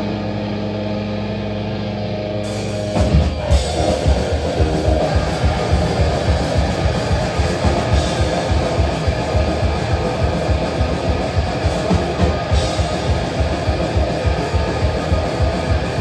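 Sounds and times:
bass guitar: 0.0 - 16.0
distorted electric guitar: 0.0 - 16.0
fast drum beat: 3.0 - 16.0.

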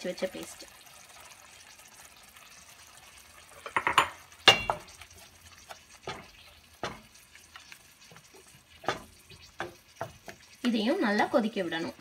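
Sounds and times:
spatula stirring paste in a pot: 1.1 - 12.0
spatula scraping and knocking pot: 3.6 - 10.6.

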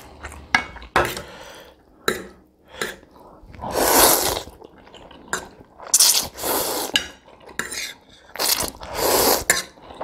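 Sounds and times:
person slurping noodles: 3.4 - 5.3, 5.9 - 7.0, 7.7 - 10.0.

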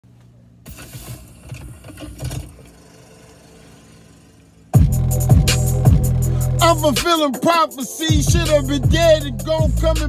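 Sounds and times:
low steady hum in car: 0.1 - 4.8.

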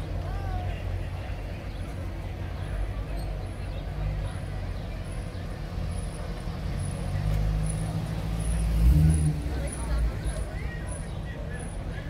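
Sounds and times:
car engine rumble driving past: 3.0 - 11.9.

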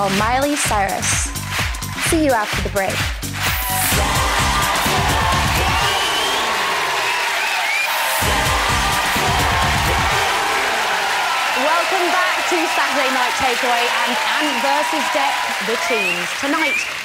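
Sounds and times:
theme music with bass beat: 0.0 - 7.0, 8.0 - 11.4
crowd cheering and applause: 0.0 - 17.0.

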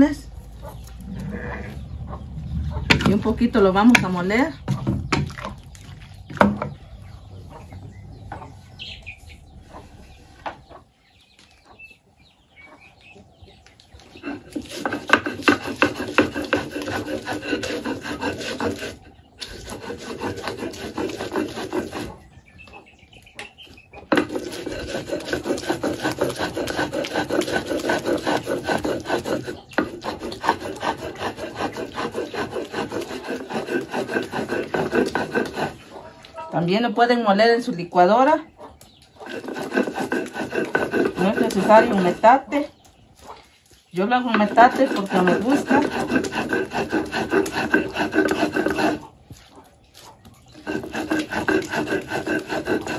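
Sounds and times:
stone grinding on stone: 14.1 - 22.2, 24.1 - 36.0, 39.2 - 42.5, 44.3 - 49.2, 50.5 - 52.9.

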